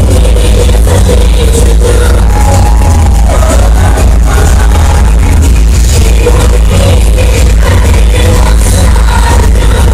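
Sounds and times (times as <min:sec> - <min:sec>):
live pop music over loudspeakers: 0:00.0 - 0:09.9.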